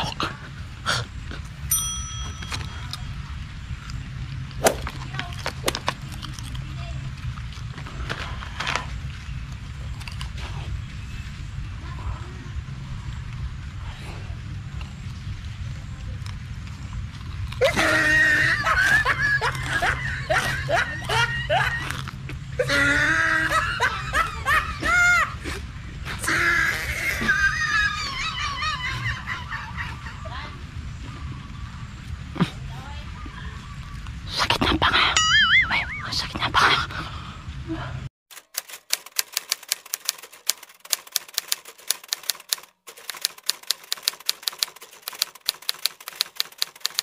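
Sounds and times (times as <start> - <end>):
man laughing and snickering: 17.6 - 25.6.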